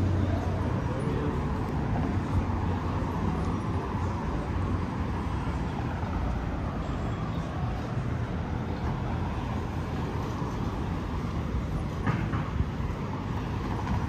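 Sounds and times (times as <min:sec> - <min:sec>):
road traffic rumble: 0:00.0 - 0:14.0.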